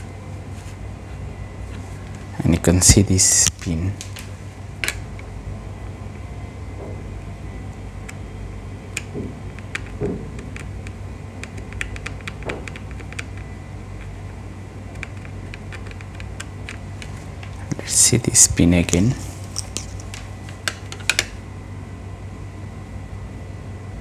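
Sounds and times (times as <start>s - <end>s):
steady low hum: 0.0s - 24.0s.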